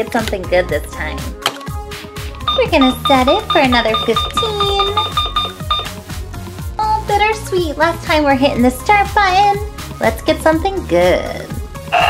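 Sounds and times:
background music with steady beat: 0.0s - 12.0s
rapid short timer beeps: 2.5s - 5.9s.

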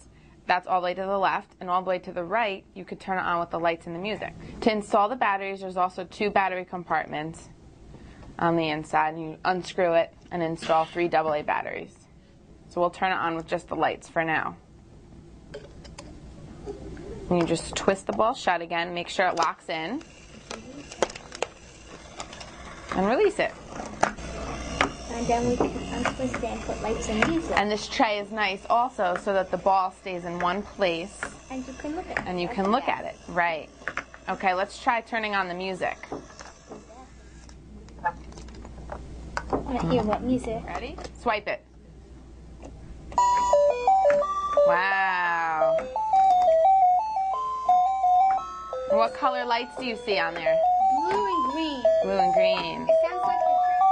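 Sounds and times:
electronic toy tune: 43.2s - 53.9s.

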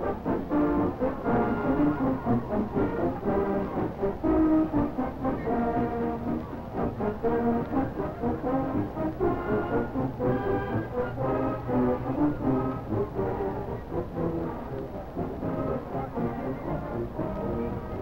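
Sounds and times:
marching band playing: 0.0s - 18.0s.

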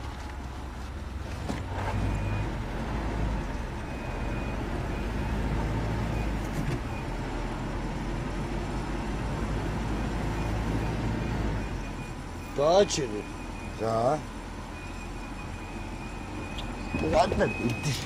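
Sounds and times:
engine and road rumble: 0.0s - 18.0s.

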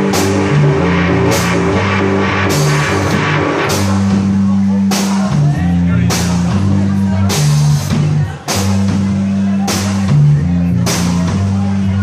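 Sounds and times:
cymbal crash: 0.0s - 5.3s
live rock band playing: 0.0s - 12.0s.

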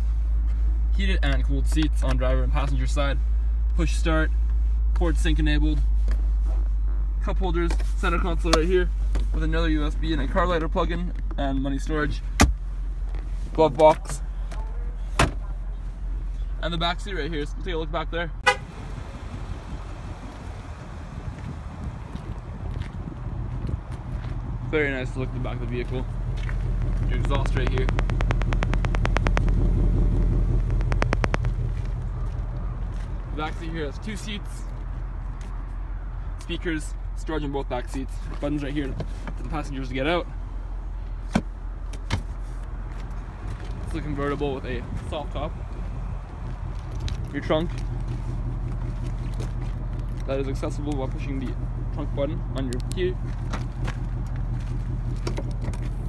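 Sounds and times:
car engine idling: 0.0s - 56.0s
rapid sharp ticks: 26.4s - 32.0s.

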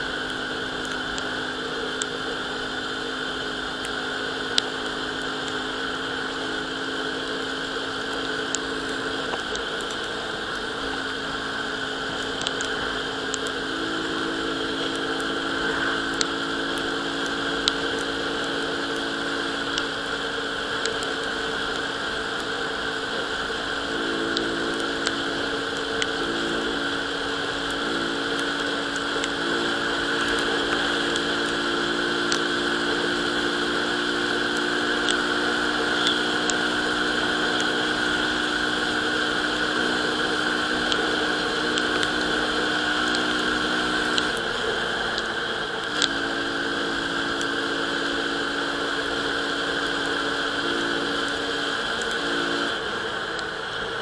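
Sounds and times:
scooter engine running: 0.0s - 54.0s
wind and road noise: 0.0s - 54.0s
light ticks: 12.2s - 13.6s, 16.2s - 19.9s, 20.8s - 22.5s, 34.2s - 35.2s, 40.7s - 46.3s, 49.1s - 53.6s.

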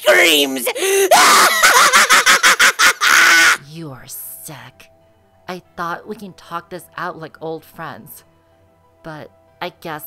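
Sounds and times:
maniacal villain laugh: 1.1s - 3.6s.

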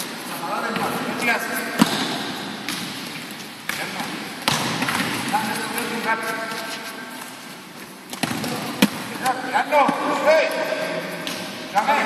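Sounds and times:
balls bouncing on indoor court: 0.0s - 12.0s
sharp loud ball strike: 1.8s - 3.0s, 4.4s - 5.3s.

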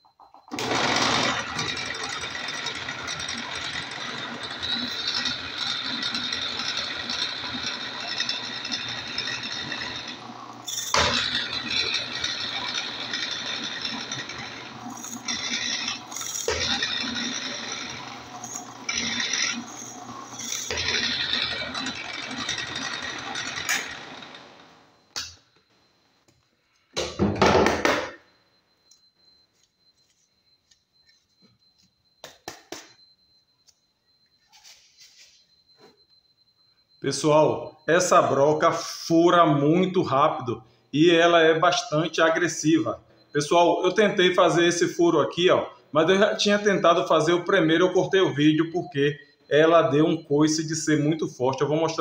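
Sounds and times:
drill bit cutting wood: 0.5s - 24.7s
drill press motor hum: 0.5s - 25.3s.

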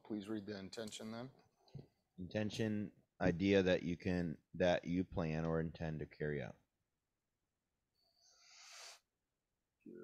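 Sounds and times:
breath into microphone: 8.0s - 9.1s.

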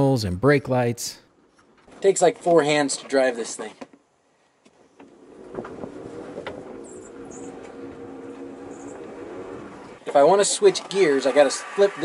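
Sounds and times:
electric motor humming: 6.1s - 12.0s.

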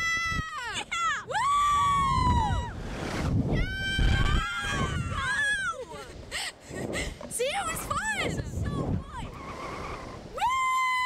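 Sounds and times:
wind rumbling on microphone: 0.0s - 11.0s
riders screaming and laughing: 3.6s - 6.1s.

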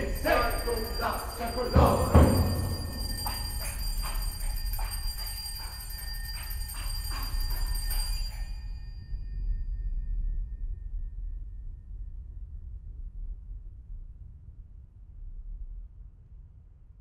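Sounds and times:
soft repeated knocks: 0.0s - 8.2s
chamber ensemble film score: 0.0s - 8.3s
high sustained ringing tones: 0.0s - 10.7s.

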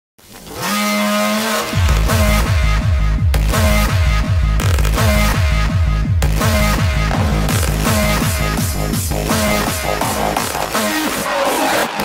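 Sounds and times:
hard kick drums pounding: 1.8s - 10.8s.

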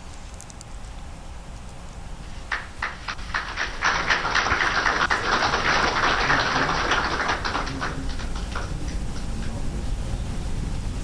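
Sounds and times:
rapid overlapping clicks: 2.5s - 9.6s.

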